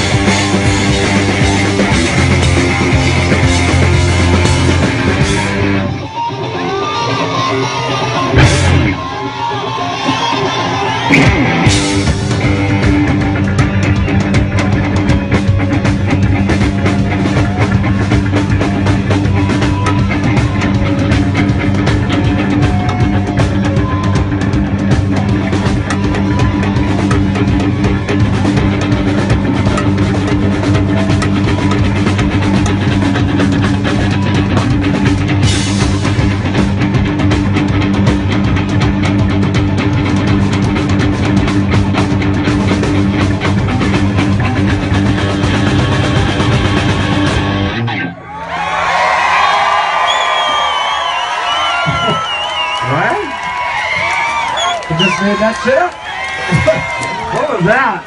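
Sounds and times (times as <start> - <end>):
crowd cheering and whooping: 0.0 - 36.3, 47.6 - 58.0
live rock band playing: 0.0 - 58.0
warbling whistle: 54.4 - 55.3.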